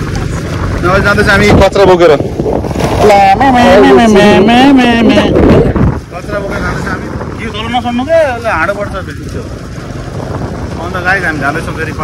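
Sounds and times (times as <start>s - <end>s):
wind rushing over microphone: 0.0s - 12.0s
men's voices: 0.7s - 12.0s.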